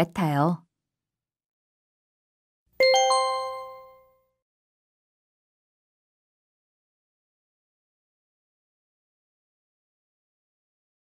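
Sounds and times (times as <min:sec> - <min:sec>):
bell-like chime: 0:02.8 - 0:04.2.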